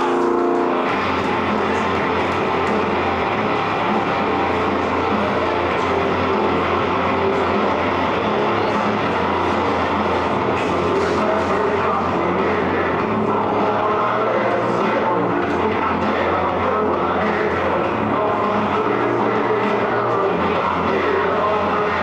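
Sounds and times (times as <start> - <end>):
music playing: 0.0 - 22.0.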